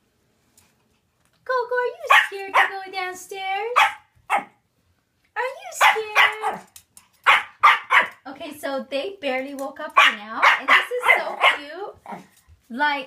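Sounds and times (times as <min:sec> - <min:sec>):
puppy barking and yipping: 0:02.1 - 0:02.8, 0:03.8 - 0:04.6, 0:05.8 - 0:08.2, 0:10.0 - 0:12.2.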